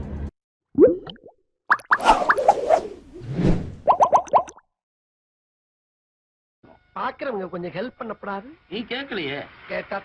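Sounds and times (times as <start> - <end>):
rising pop-like blips: 0.8 - 2.9, 3.8 - 4.6
brief swish: 2.0 - 3.8.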